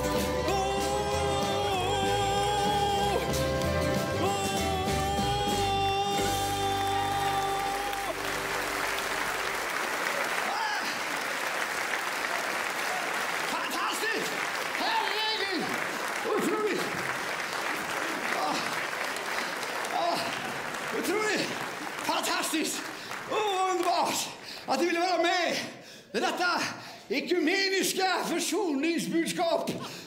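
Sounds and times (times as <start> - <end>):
audience applauding: 0.0 - 24.9.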